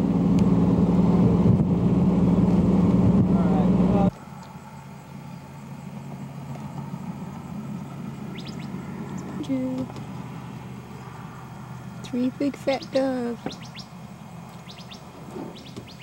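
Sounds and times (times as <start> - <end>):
road noise: 0.0 - 16.0
vehicle engine drone: 0.0 - 16.0
outdoor background hiss: 0.3 - 16.0.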